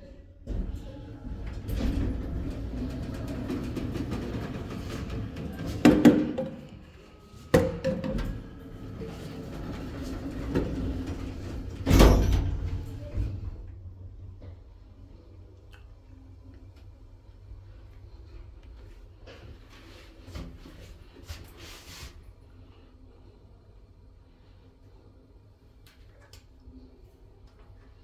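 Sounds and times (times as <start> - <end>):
lift running rumble and hum: 0.0 - 21.4
sliding doors heavy thud: 0.5 - 6.6, 7.6 - 13.6.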